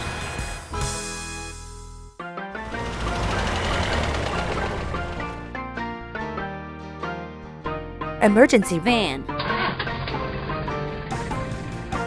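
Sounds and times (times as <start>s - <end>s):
background music: 0.0s - 12.0s
loud rumbling engine: 2.6s - 5.5s.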